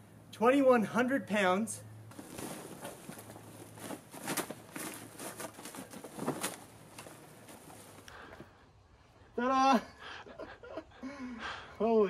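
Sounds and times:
bags rustling and scraping: 0:02.1 - 0:08.1
soft knocks of bags set down: 0:02.1 - 0:08.5.

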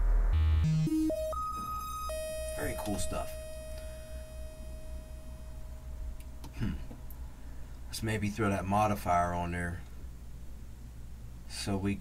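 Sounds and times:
faint steady synthesizer tone: 0:00.0 - 0:12.0
low steady hum: 0:00.0 - 0:12.0.

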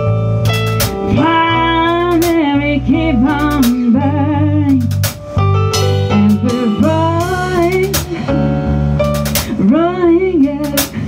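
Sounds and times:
drum kit with cymbal hits: 0:00.0 - 0:11.0
electric bass: 0:00.0 - 0:11.0
keyboard chords: 0:00.0 - 0:11.0.

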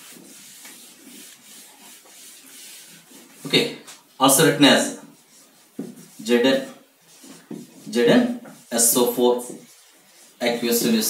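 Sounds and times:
eraser wiping whiteboard: 0:00.0 - 0:11.0.

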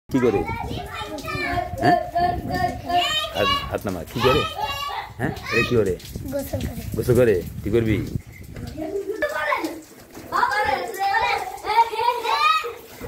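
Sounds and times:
children talking and calling out: 0:00.1 - 0:07.0, 0:08.3 - 0:13.0.

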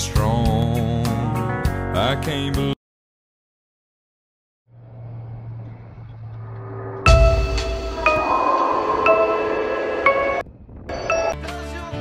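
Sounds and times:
car engine and road hum: 0:04.7 - 0:07.1.

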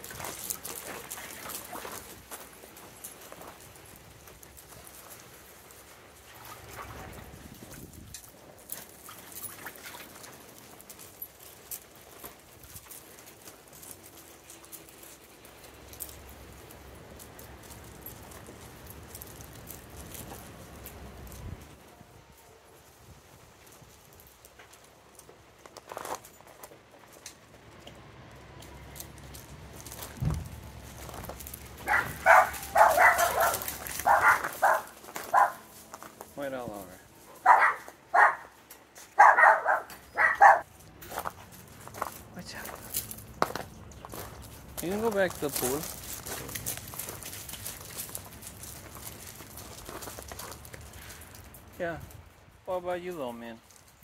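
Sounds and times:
dog barking: 0:31.8 - 0:35.6, 0:37.4 - 0:38.6, 0:39.2 - 0:40.6.

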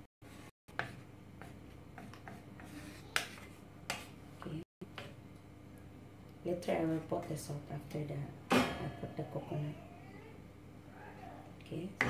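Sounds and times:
wooden spatula scraping a pan: 0:00.3 - 0:04.1.

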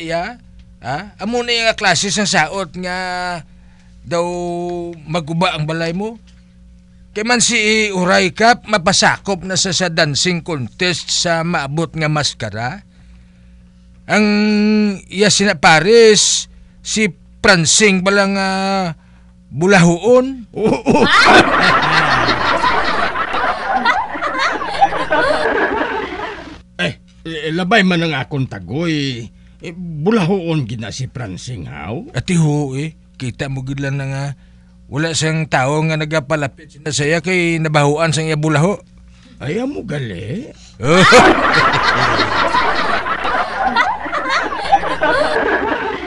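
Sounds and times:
people laughing: 0:20.6 - 0:26.6, 0:40.8 - 0:46.0.

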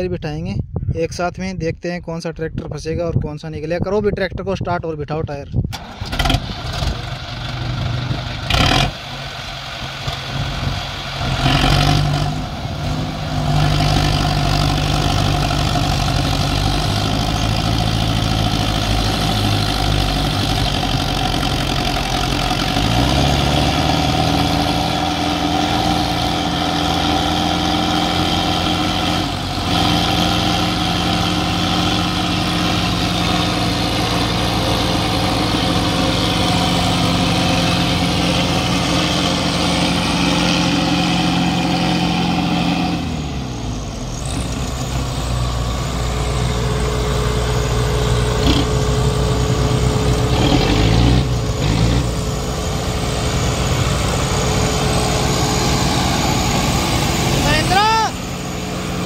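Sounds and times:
tractor diesel engines under load: 0:00.0 - 0:59.0.

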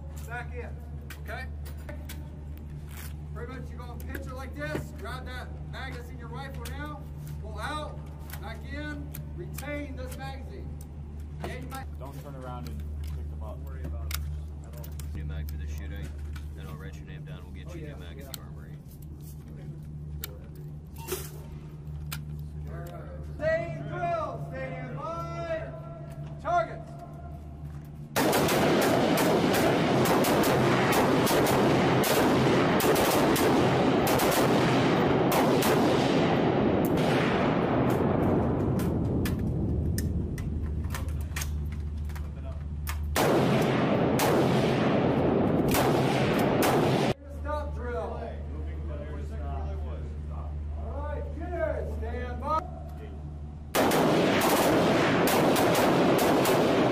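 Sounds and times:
low steady hum: 0:00.0 - 0:56.9
rifles firing with heavy echo: 0:28.0 - 0:47.2, 0:53.5 - 0:56.9.

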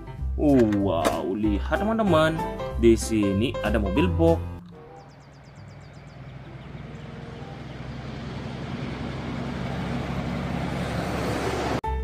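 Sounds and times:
truck diesel engine humming: 0:03.3 - 0:12.0
road and tyre noise: 0:04.6 - 0:12.0.

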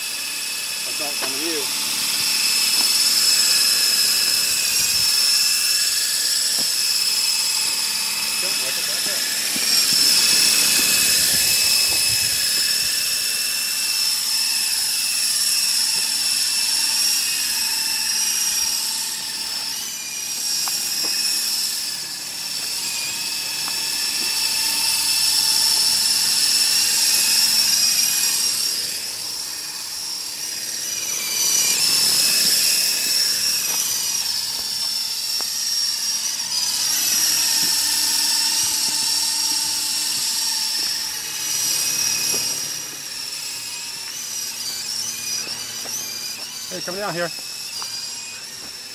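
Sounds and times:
rc helicopter motor whine: 0:00.0 - 0:48.9.

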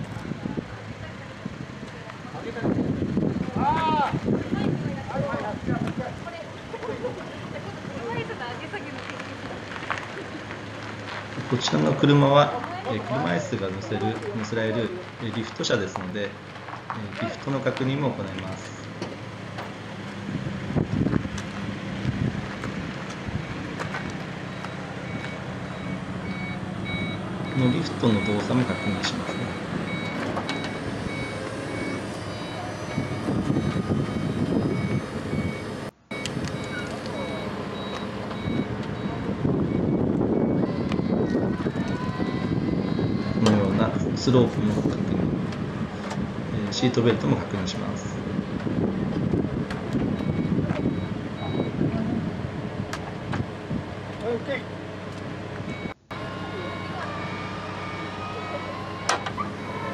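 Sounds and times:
wheelchair lift warning beeps: 0:24.5 - 0:43.3, 0:50.1 - 0:51.9, 0:55.7 - 0:59.9.

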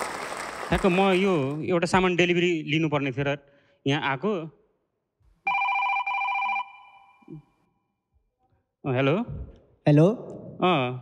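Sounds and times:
telephone ringing: 0:05.5 - 0:07.3.

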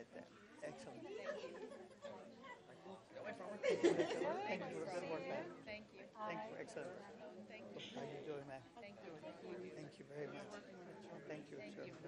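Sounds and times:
indistinct chatter of people: 0:00.0 - 0:12.0.

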